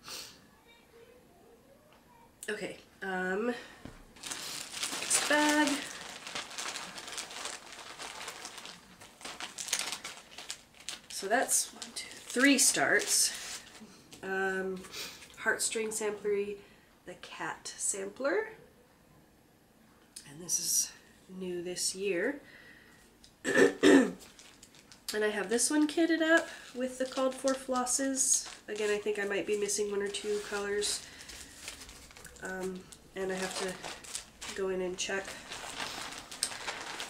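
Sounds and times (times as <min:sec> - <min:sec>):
bag crinkling and rustling: 0:03.8 - 0:13.9, 0:24.2 - 0:37.0
woman coughing: 0:23.4 - 0:24.2.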